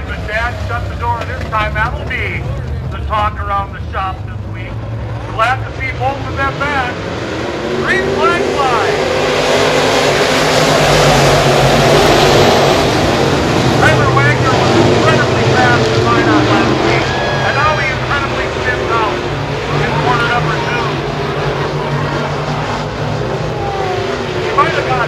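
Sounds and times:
race car engines accelerating: 0:00.0 - 0:25.0
person speaking: 0:07.8 - 0:09.0, 0:13.8 - 0:20.9.

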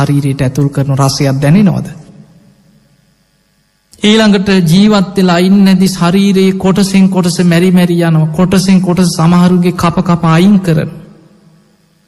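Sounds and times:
man speaking: 0:00.0 - 0:02.2, 0:03.9 - 0:11.2
low steady hum: 0:00.0 - 0:12.0.

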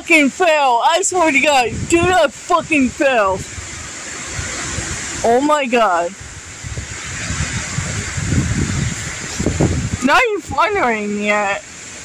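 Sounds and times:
wind buffeting microphone: 0:00.0 - 0:12.0
wind through tree branches: 0:00.0 - 0:12.0.

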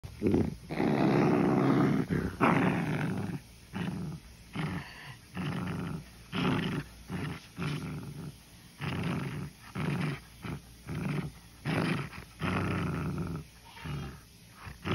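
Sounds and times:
puppy play growling: 0:00.0 - 0:14.9.

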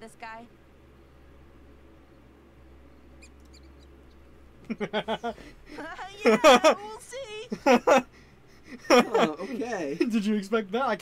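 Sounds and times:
low hum: 0:00.0 - 0:11.0
man laughing: 0:04.6 - 0:06.9, 0:07.5 - 0:10.2.

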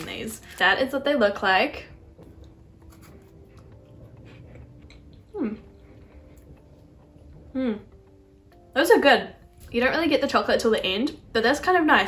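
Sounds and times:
person humming hmm: 0:05.2 - 0:05.9, 0:07.4 - 0:08.1.

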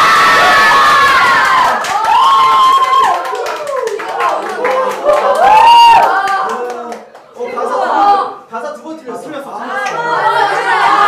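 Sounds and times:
people cheering and shrieking: 0:00.0 - 0:06.9.

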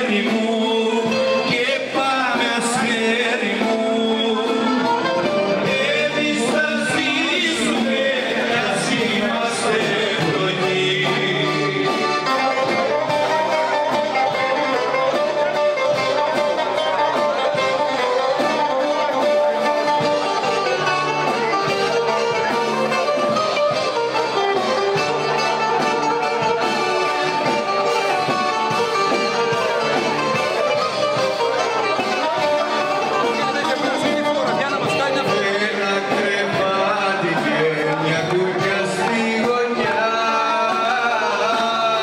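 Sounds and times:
band playing dance music: 0:00.0 - 0:42.0
plucked string instruments: 0:00.0 - 0:42.0.

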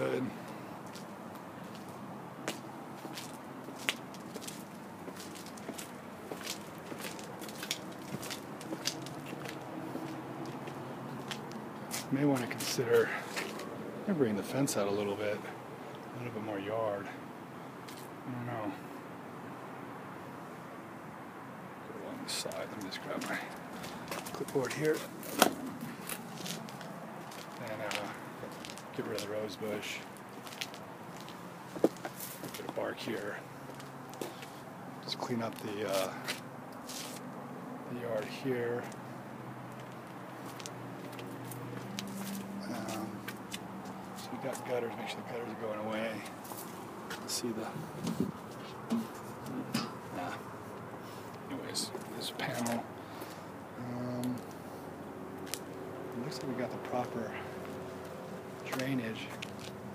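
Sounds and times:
footsteps on concrete: 0:00.8 - 0:13.7, 0:23.2 - 0:29.3, 0:30.0 - 0:32.8, 0:33.6 - 0:34.6, 0:35.5 - 0:37.3, 0:39.7 - 0:44.7, 0:46.2 - 0:50.0, 0:55.4 - 0:55.7, 0:57.5 - 0:59.8.

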